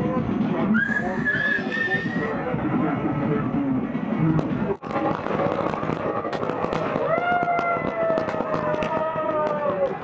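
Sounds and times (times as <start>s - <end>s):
firecrackers cracking: 4.4s - 10.0s.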